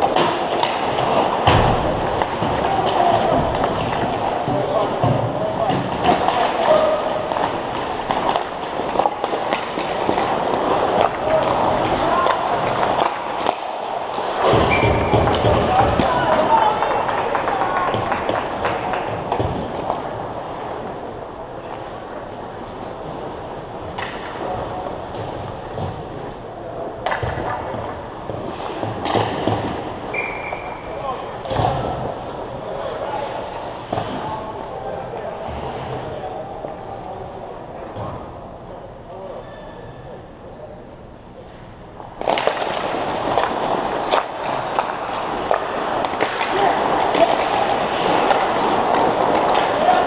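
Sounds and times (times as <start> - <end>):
hockey sticks and puck clacking: 0.0 - 34.8, 42.0 - 50.0.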